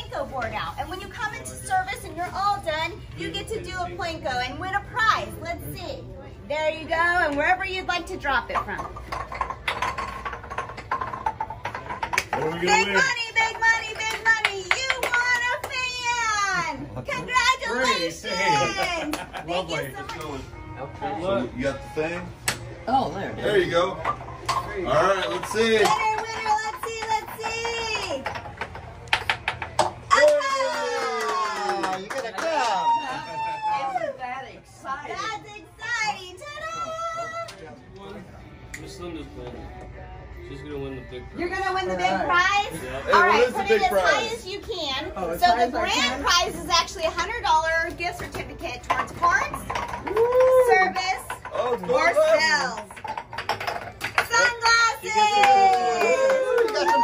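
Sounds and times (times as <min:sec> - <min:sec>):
onlookers ooh calls and cheers: 0:30.1 - 0:34.2, 0:50.0 - 0:51.0, 0:55.2 - 0:57.0.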